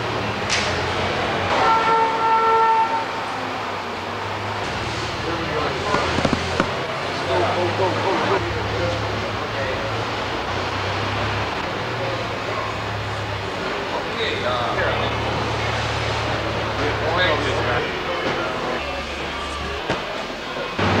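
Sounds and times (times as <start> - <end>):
industrial background noise: 0.0 - 21.0
horn steady tone: 1.5 - 3.7.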